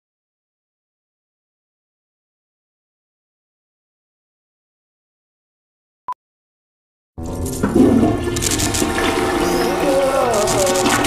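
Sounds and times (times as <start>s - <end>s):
music: 7.2s - 11.0s
toilet flushing: 7.6s - 11.0s.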